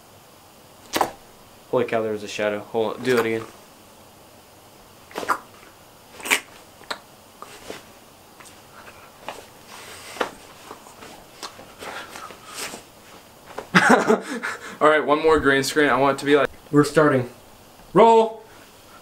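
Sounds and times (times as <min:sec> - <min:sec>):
boy's held-in laughter: 0:13.7 - 0:14.8.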